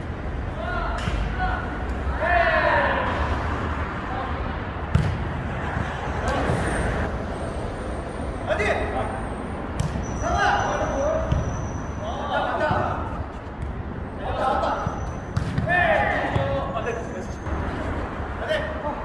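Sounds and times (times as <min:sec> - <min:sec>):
players shouting: 0:00.5 - 0:04.5, 0:10.1 - 0:13.3, 0:14.1 - 0:17.4
ball being kicked: 0:04.9 - 0:05.3, 0:15.3 - 0:16.6.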